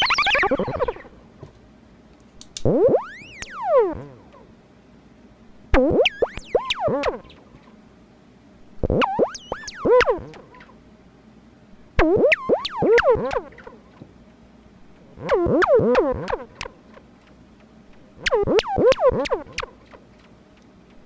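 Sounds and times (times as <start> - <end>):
synthesizer swooping tones: 0.0 - 1.3, 2.7 - 4.4, 5.7 - 7.5, 8.8 - 10.7, 12.0 - 13.8, 15.2 - 16.7, 18.2 - 19.7.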